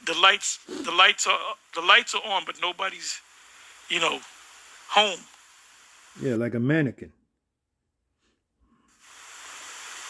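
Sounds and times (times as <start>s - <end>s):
steady background hiss: 0.0s - 7.0s, 8.8s - 10.0s.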